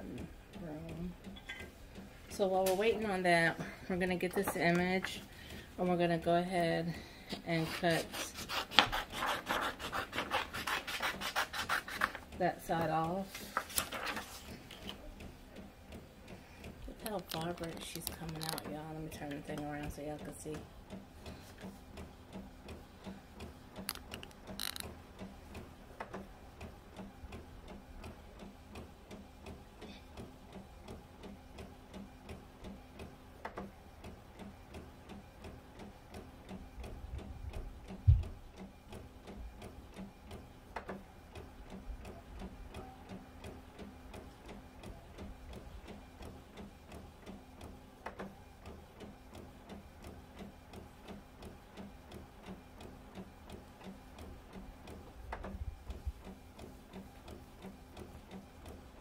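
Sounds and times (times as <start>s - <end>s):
inkjet printer print head ticking: 8.4s - 59.0s
sharp printer click: 23.8s - 24.9s.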